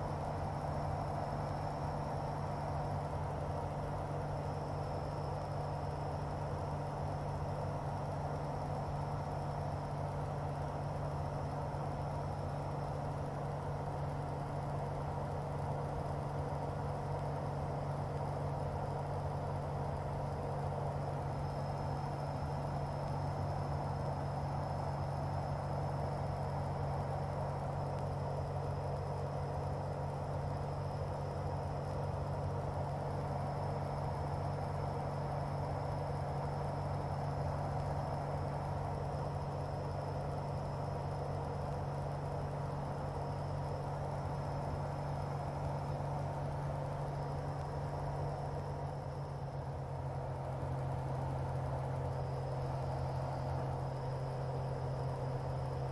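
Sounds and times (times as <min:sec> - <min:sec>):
aircraft engine and propeller drone: 0:00.0 - 0:55.9.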